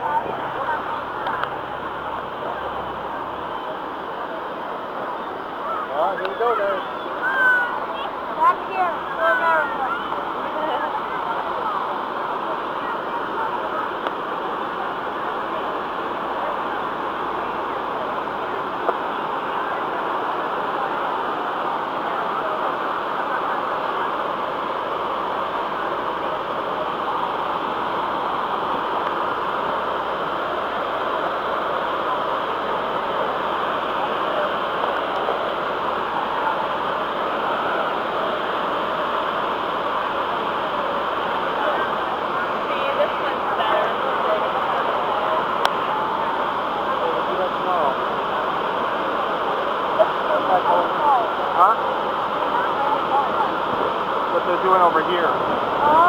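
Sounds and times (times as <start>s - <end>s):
waterfall rushing: 0.0s - 56.0s.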